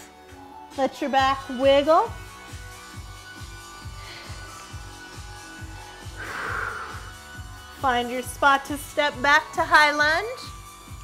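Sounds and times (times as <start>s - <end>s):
music with a low beat: 0.0s - 11.0s.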